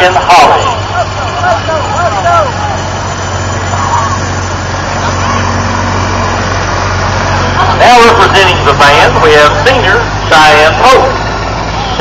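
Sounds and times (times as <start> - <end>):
golf cart engine idling: 0.0 - 12.0
people's voices: 0.0 - 12.0.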